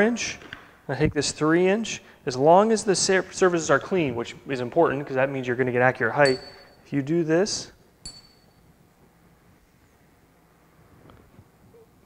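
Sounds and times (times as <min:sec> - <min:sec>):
metallic clink with high ring: 0:06.2 - 0:06.9, 0:08.0 - 0:08.8.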